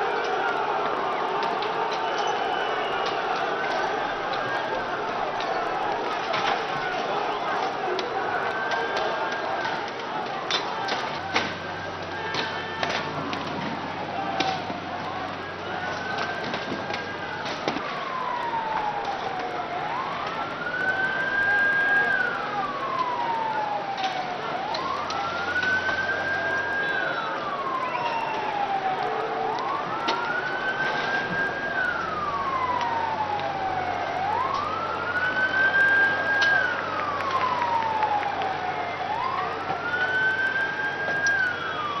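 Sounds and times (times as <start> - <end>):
sharp cracks and bangs: 0.0 - 19.5
crowd and street noise: 0.0 - 42.0
emergency siren wailing: 0.0 - 42.0.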